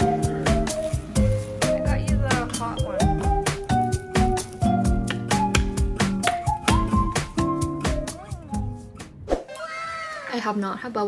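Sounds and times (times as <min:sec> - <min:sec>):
light music with plucked notes: 0:00.0 - 0:09.3.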